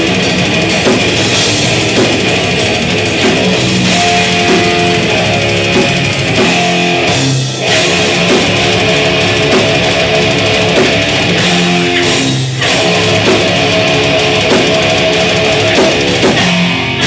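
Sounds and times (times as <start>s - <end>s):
metal band playing live: 0.0s - 17.0s.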